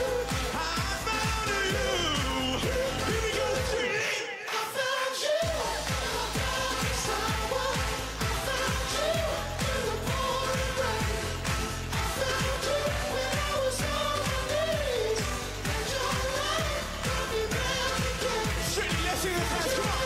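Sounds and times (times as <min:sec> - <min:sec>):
pop dance music with vocals: 0:00.0 - 0:20.0.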